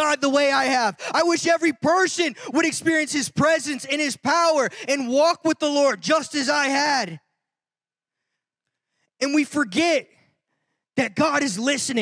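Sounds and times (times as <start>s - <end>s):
man's amplified voice: 0.0s - 7.4s, 9.0s - 12.0s.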